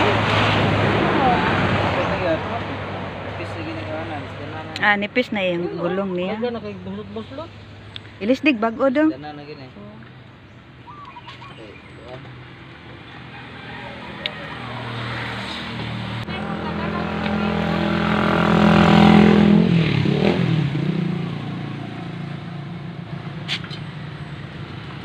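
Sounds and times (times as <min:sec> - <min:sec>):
passing vehicle engine hum: 0:00.0 - 0:09.9, 0:10.8 - 0:25.0.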